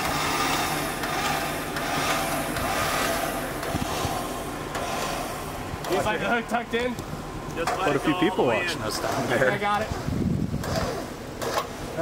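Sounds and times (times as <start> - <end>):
vehicle engine droning: 0.0 - 12.0.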